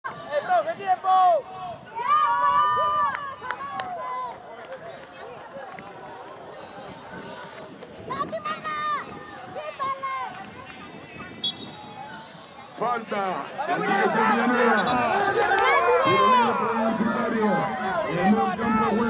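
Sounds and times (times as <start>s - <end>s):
crowd noise: 0.0s - 19.0s
spectators shouting: 12.0s - 19.0s.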